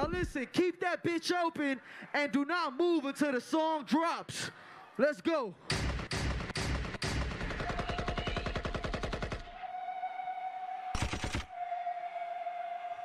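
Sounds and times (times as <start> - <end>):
machine-gun sound effect: 5.7 - 9.5, 11.0 - 11.5.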